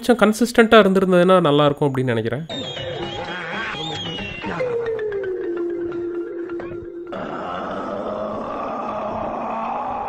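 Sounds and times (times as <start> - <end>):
man's long vocal cry: 7.1 - 10.0.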